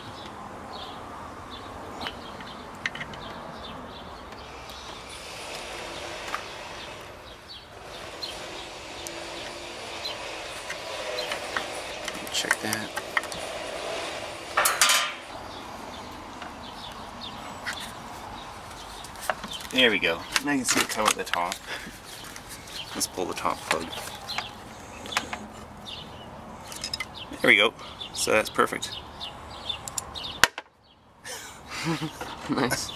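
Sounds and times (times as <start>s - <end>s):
metallic clatter with ring: 26.6s - 27.2s
sharp click: 29.8s - 30.6s.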